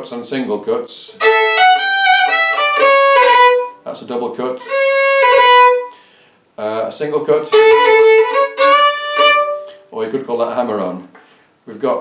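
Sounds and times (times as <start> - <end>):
solo fiddle playing: 1.1 - 3.9, 4.6 - 6.0, 7.2 - 9.8.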